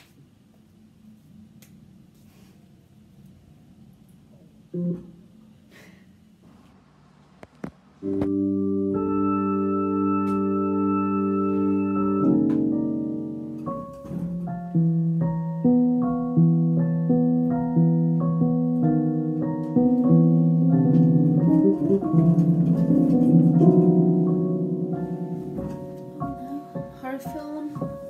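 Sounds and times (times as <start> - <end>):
electronic keyboard organ tone: 8.0 - 26.4.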